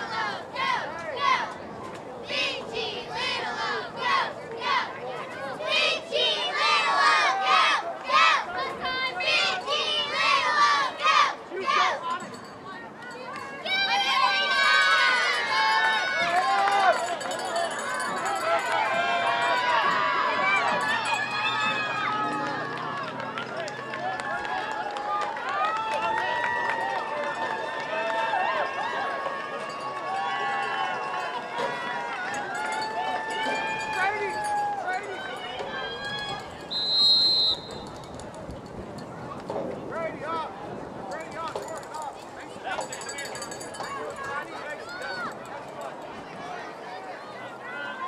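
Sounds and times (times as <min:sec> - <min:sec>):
crowd shouting and cheering: 0:00.0 - 0:38.6, 0:39.2 - 0:48.0
referee's whistle blast: 0:36.7 - 0:38.0.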